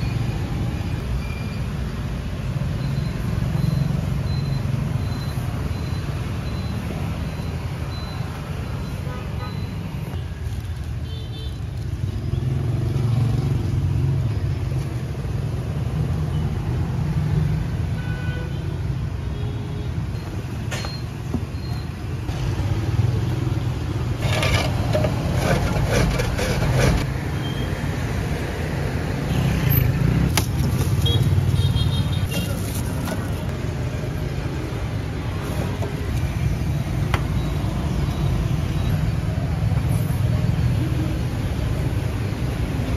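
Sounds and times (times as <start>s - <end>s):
traffic passing: 0.0s - 42.9s.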